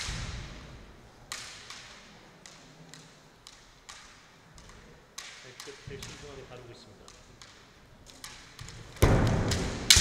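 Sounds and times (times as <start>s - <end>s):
bamboo sword striking: 8.6s - 10.0s.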